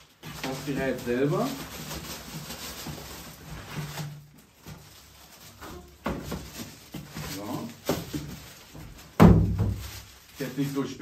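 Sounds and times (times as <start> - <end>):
foam and cardboard rustling: 0.0 - 11.0.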